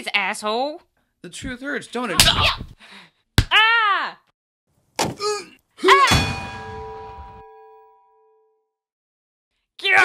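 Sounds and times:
loud metallic clang: 0:06.1 - 0:07.7.

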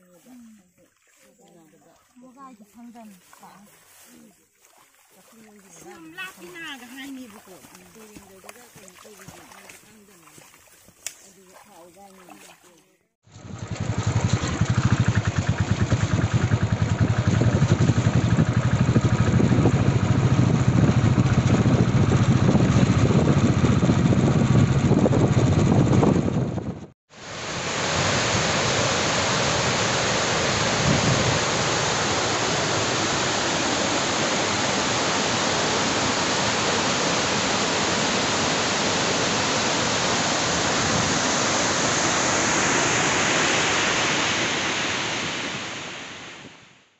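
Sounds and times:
water rushing over spillway: 0:04.6 - 0:12.8, 0:27.1 - 0:46.3.

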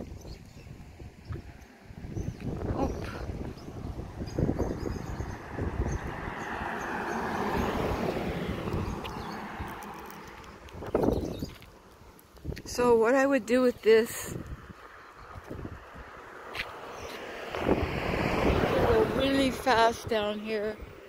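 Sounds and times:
wind gusting on microphone: 0:00.0 - 0:21.0.

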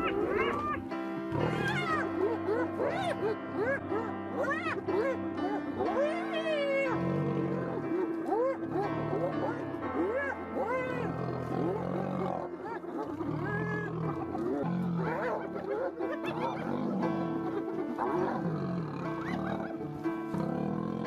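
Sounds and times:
background music with held notes: 0:00.0 - 0:21.0
lions growling: 0:00.0 - 0:21.0.

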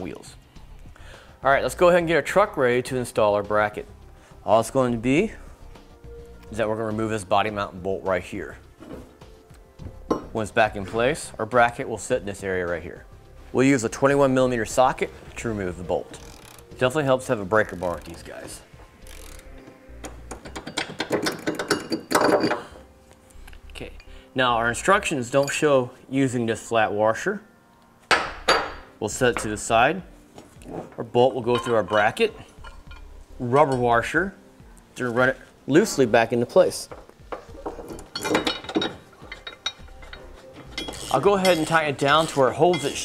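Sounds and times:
socket ratchet clicking: 0:16.1 - 0:16.8, 0:19.0 - 0:21.9
metal bolt and washers clinking: 0:16.1 - 0:24.1, 0:25.3 - 0:25.8, 0:31.4 - 0:34.0, 0:36.8 - 0:43.0
metallic clatter: 0:20.0 - 0:22.7, 0:36.9 - 0:43.0.

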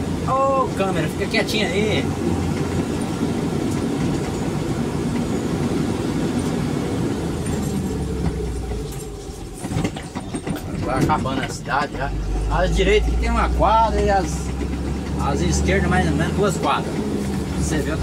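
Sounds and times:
vehicle engine and road noise: 0:00.0 - 0:18.0.

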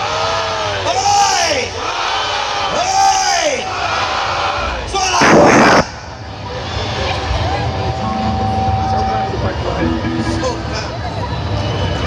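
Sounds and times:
festival crowd cheering: 0:06.3 - 0:12.0.

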